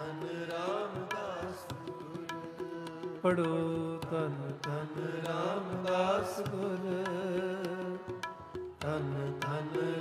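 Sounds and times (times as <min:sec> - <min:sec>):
light tabla strokes: 0:00.0 - 0:10.0.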